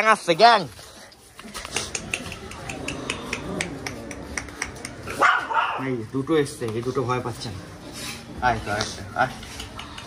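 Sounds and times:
dog barking: 5.1 - 5.9.

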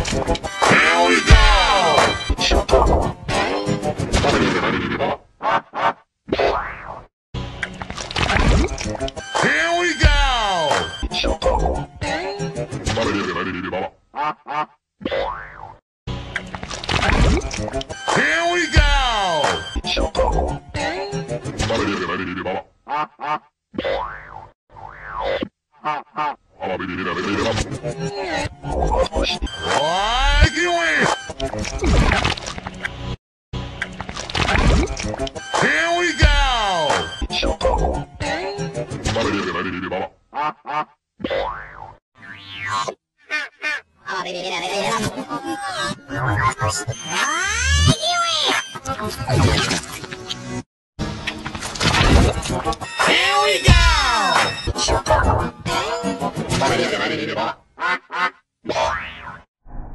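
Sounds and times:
busy cartoon music with clicks: 0.0 - 4.5, 7.4 - 13.2, 16.1 - 22.0, 27.3 - 39.4, 45.8 - 56.9
cartoon sweeping tones: 45.4 - 48.7.

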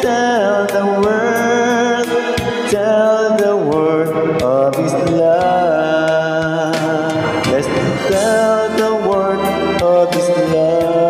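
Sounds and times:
gospel backing track: 0.0 - 11.0.

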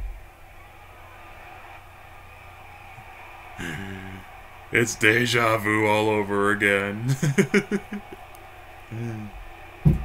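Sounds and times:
muffled wrestling broadcast: 0.0 - 10.0.

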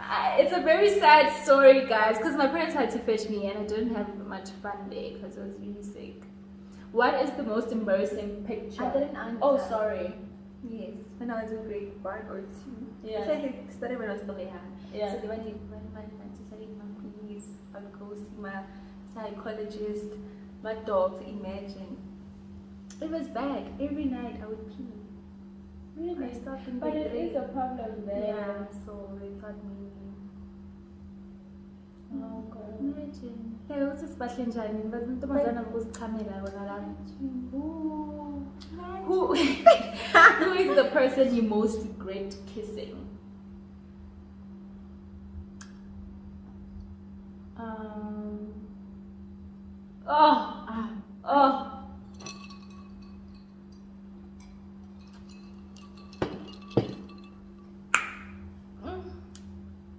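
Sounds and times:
low hum: 0.0 - 59.9
short clinks: 52.0 - 58.4.

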